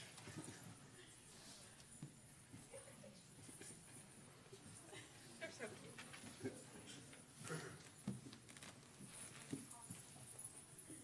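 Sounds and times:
soft footsteps and knocks: 1.8s - 3.8s, 7.2s - 10.7s.

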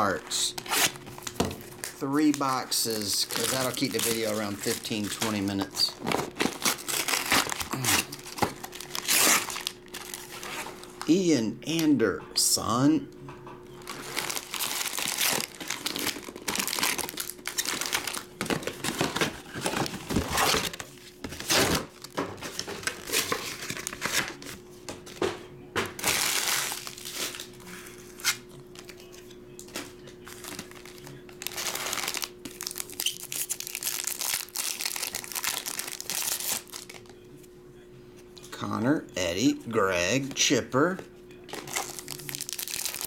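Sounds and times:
foil wrappers crinkling: 0.0s - 11.2s, 13.8s - 24.6s, 26.0s - 37.2s, 41.5s - 43.0s.

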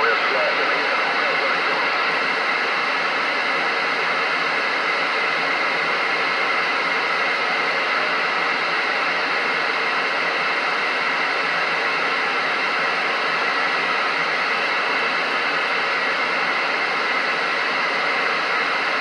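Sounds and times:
radio static hiss: 0.0s - 19.0s.

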